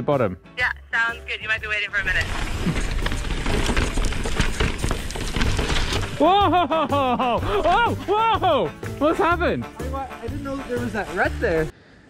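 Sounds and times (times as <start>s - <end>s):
mountain bike rattling over bumps: 1.9s - 8.2s, 10.3s - 11.7s
tyres on dirt and rock: 1.9s - 11.7s.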